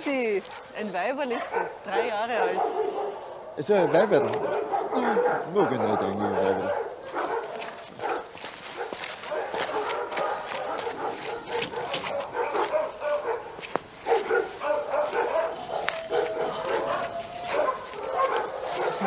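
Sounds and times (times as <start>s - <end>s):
dogs barking and yelping: 0.4s - 19.0s
dog long drawn-out cry: 1.4s - 8.3s, 14.1s - 19.0s.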